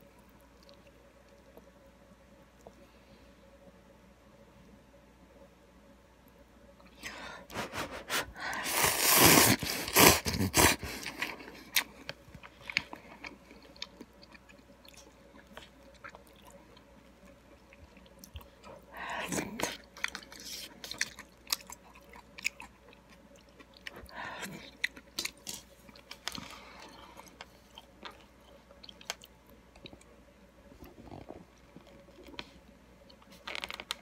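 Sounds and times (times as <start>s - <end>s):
chewing with wet mouth clicks: 0.2s - 1.7s, 11.7s - 18.8s, 19.5s - 26.4s, 27.2s - 30.1s
person slurping noodles: 8.6s - 11.0s.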